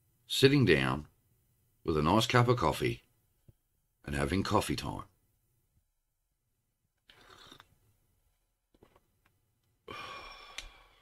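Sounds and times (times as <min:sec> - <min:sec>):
man slurping coffee: 0:07.0 - 0:07.8
man sighing ahh: 0:09.8 - 0:11.0.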